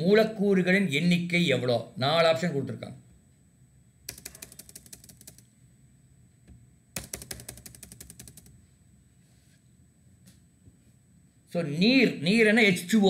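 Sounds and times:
keyboard keys clicking: 4.1 - 5.4, 7.0 - 8.5.

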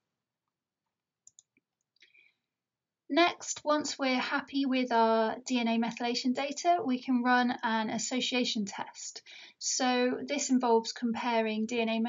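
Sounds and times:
faint clicks: 1.2 - 2.2.

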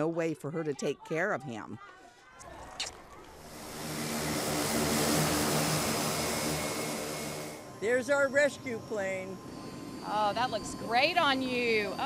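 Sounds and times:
propeller aircraft engine humming: 3.2 - 12.0.

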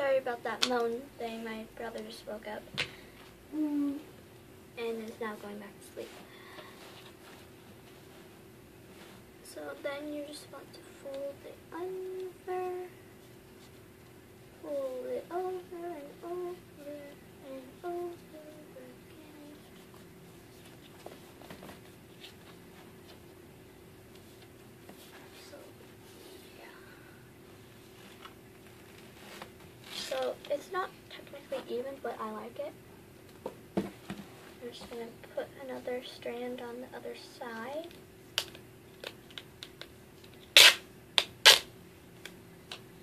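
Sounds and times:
faint steady hum: 0.0 - 43.0
soft tape rustles and taps: 1.8 - 3.4, 5.0 - 14.2, 17.9 - 23.4, 24.0 - 26.0, 27.8 - 31.8, 33.2 - 36.3, 37.4 - 41.6
duct tape ripping off roll: 40.4 - 41.7.

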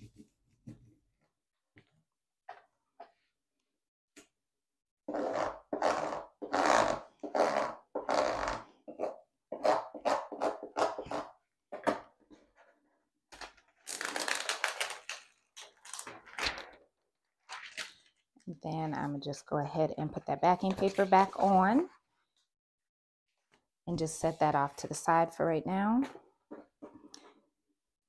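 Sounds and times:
plastic scraper scratching on tape: 5.1 - 11.4.

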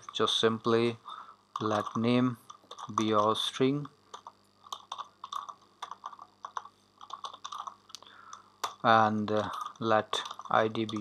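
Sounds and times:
computer keyboard typing: 1.6 - 7.9, 9.4 - 11.0.

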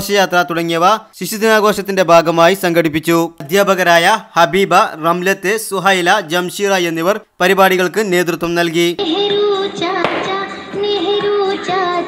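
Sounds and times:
child-like voice singing: 9.0 - 12.0
musical backing: 9.0 - 12.0
short sharp beat: 10.0 - 10.9.

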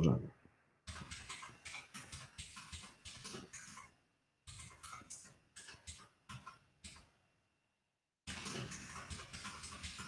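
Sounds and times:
computer keyboard typing: 0.9 - 3.9, 4.5 - 7.0, 8.3 - 10.0.

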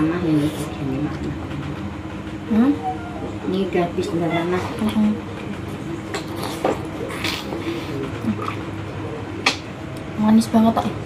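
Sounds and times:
low background hum: 0.0 - 11.0
wet eating smacks: 6.1 - 8.6.

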